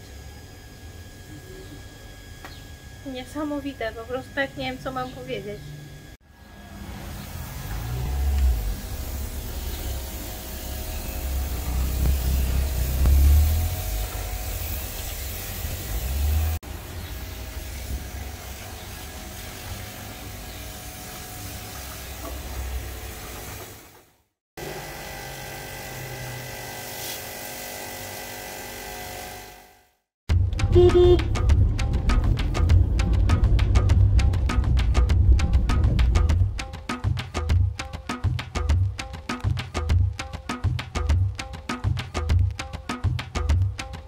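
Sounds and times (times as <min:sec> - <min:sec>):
pressure washer motor whine: 0:00.0 - 0:23.7, 0:24.6 - 0:29.9
water jet spraying: 0:07.0 - 0:24.0, 0:25.2 - 0:29.4
heavy low rumble: 0:07.8 - 0:16.6, 0:30.3 - 0:36.6.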